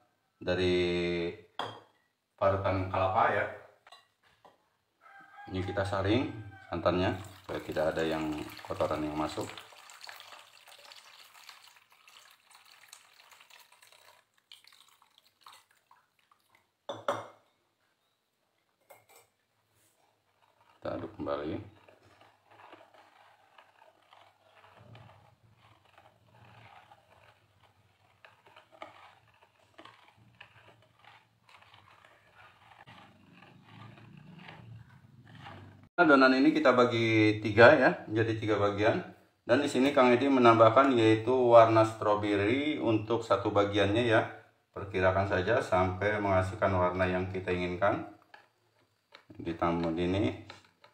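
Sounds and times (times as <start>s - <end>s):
whisk stirring batter in bowl: 2.4s - 17.2s, 18.8s - 37.8s, 38.4s - 50.9s.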